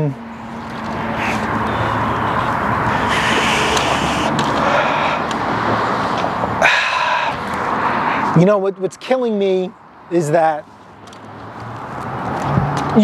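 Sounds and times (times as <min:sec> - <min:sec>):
road traffic passing: 0:00.0 - 0:13.0
high-pitched squeal: 0:00.9 - 0:05.2.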